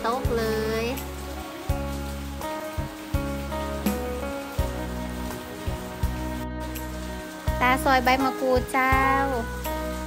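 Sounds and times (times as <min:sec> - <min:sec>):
background music: 0:00.0 - 0:10.0
falling rain hiss: 0:00.0 - 0:10.0.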